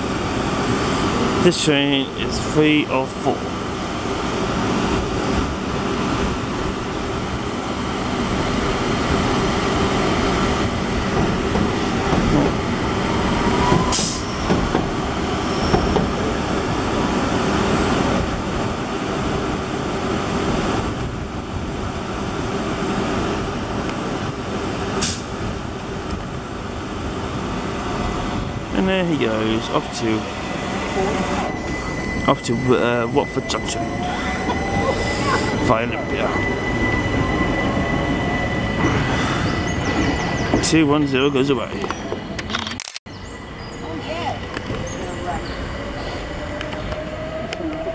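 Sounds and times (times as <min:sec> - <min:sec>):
train wheels rumbling: 0:00.0 - 0:47.9.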